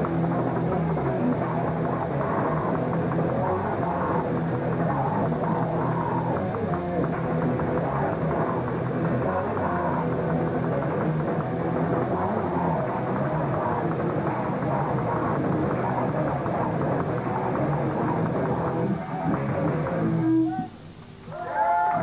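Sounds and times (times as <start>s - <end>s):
punk band playing live: 0.0s - 20.7s
vocalist screaming: 21.3s - 22.0s.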